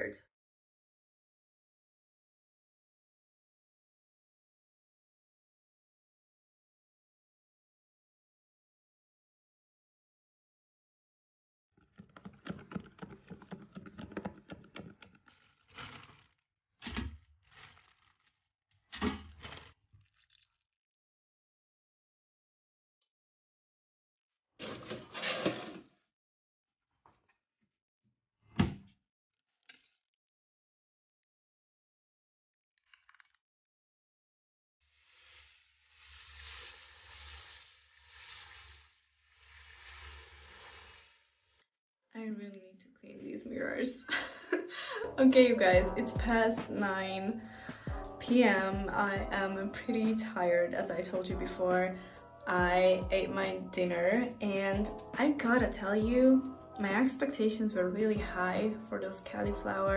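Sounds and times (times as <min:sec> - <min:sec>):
parchment paper rustling on tray: 0:12.1 - 0:16.3, 0:17.5 - 0:18.3.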